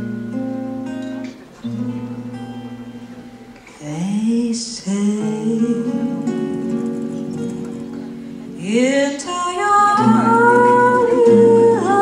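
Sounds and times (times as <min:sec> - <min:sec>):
acoustic guitars: 0:00.0 - 0:12.0.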